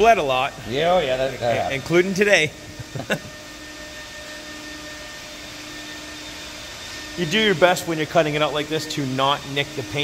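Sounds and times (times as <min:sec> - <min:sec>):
machine whirring hum: 0:00.0 - 0:10.0.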